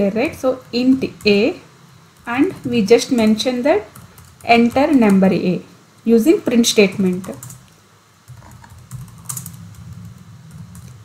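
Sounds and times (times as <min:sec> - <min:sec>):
computer keyboard typing: 0:00.2 - 0:01.6, 0:02.2 - 0:05.4, 0:06.6 - 0:07.7, 0:08.3 - 0:11.0.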